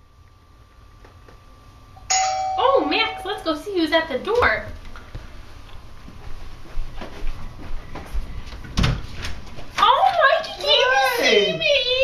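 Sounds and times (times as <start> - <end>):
doorbell chime ringing: 2.1 - 3.5.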